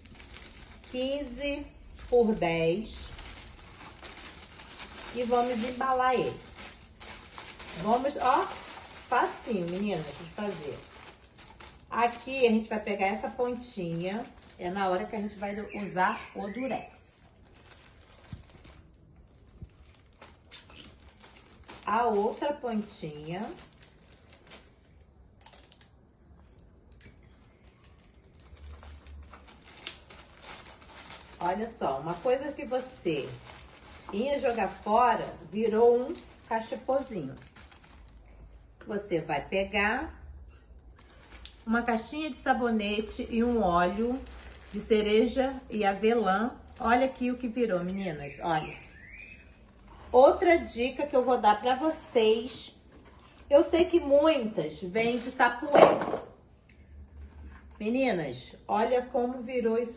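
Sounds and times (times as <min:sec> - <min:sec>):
paper bag rustling: 0:00.0 - 0:25.8, 0:27.4 - 0:38.4, 0:41.0 - 0:48.0, 0:48.6 - 0:51.3.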